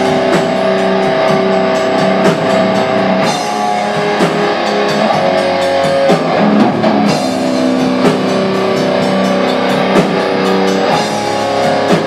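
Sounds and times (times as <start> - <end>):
distorted electric guitars droning: 0.0 - 12.0
drums: 0.0 - 12.0.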